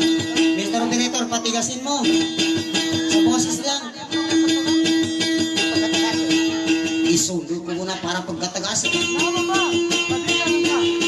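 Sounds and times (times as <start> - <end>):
guitar strumming: 0.0 - 11.0.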